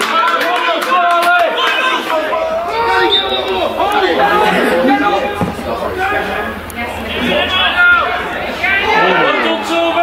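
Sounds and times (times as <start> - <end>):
people talking and calling out: 1.0 - 10.0
short dull thud: 5.3 - 5.9.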